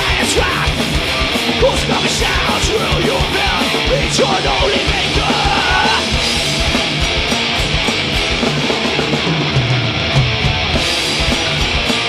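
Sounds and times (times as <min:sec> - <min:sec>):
singer yelling: 0:00.0 - 0:01.0, 0:01.6 - 0:06.2
bass guitar: 0:00.0 - 0:12.0
distorted electric guitars: 0:00.0 - 0:12.0
rapid kick drum beats: 0:00.0 - 0:12.0.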